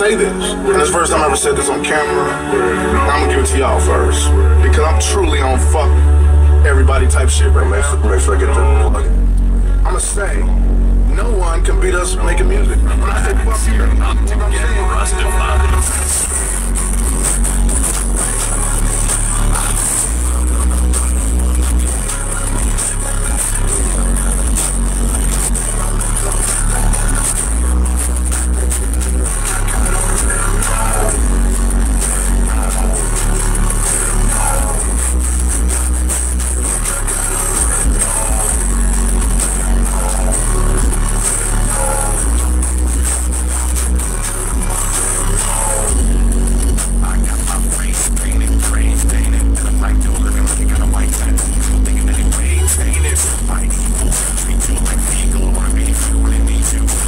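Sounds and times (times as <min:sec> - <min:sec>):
heavy subwoofer bass: 0:00.0 - 0:57.0
song over car audio system: 0:00.0 - 0:57.0.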